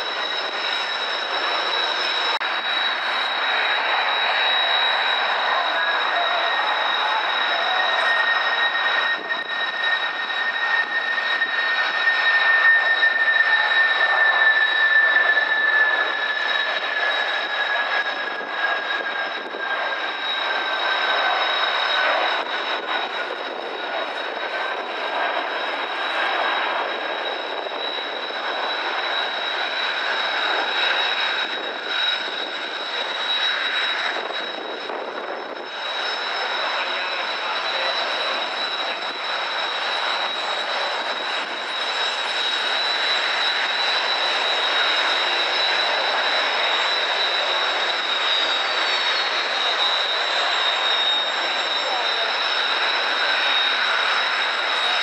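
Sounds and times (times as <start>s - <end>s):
jet aircraft flying past: 0.0s - 55.0s.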